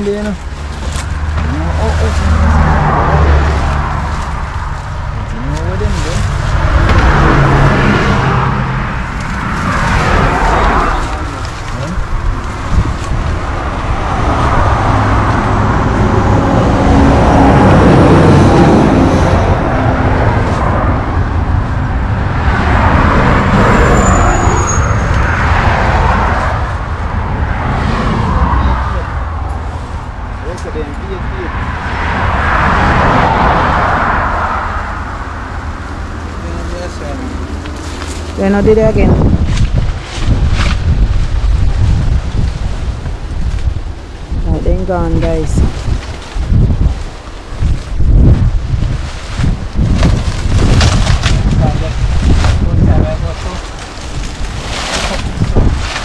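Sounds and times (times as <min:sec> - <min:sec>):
cars passing: 0:00.0 - 0:56.0
low traffic rumble: 0:00.0 - 0:56.0.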